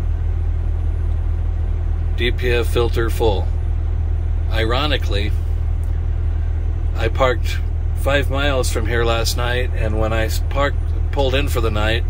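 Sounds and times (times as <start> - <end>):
diesel truck engine rumbling: 0.0 - 12.0.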